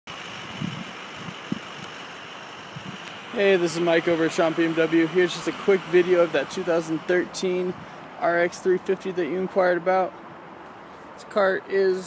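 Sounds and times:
outdoor background noise: 0:00.1 - 0:12.0.

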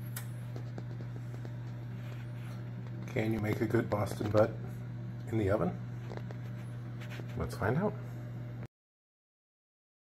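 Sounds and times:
steady low hum: 0:00.0 - 0:08.7.

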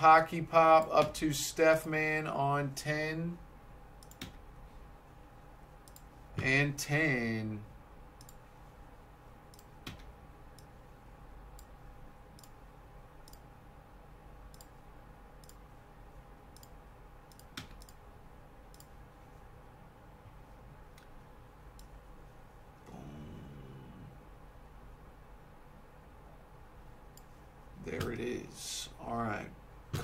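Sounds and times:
faint electrical hum: 0:00.0 - 0:30.0
computer mouse and key clicks: 0:04.0 - 0:04.4, 0:05.8 - 0:06.1, 0:08.2 - 0:08.4, 0:09.5 - 0:10.8, 0:11.5 - 0:12.6, 0:13.2 - 0:13.5, 0:14.5 - 0:14.8, 0:15.4 - 0:15.6, 0:16.5 - 0:18.0, 0:18.7 - 0:19.0, 0:20.9 - 0:22.0, 0:27.1 - 0:27.4.

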